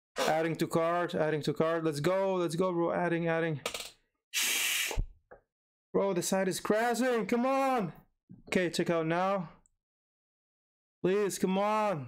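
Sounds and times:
person hissing breath: 4.4s - 5.0s.

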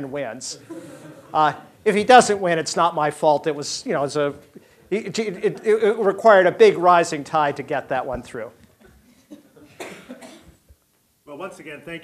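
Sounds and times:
person coughing: 9.2s - 10.6s.

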